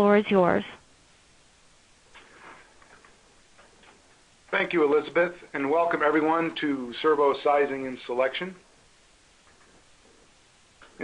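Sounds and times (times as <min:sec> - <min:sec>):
faint steady hiss: 0:00.0 - 0:11.0
faint irregular clicks: 0:02.0 - 0:04.3, 0:09.4 - 0:11.0.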